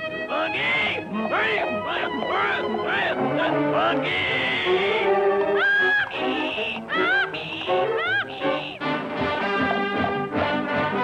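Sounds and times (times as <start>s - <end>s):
orchestral music: 0.0s - 11.0s
cartoon donkey braying: 0.2s - 10.7s.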